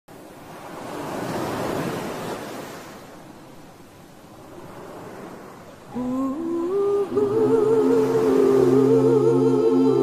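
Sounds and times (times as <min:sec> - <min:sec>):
wave breaking on beach: 0:00.3 - 0:03.2, 0:07.1 - 0:10.0.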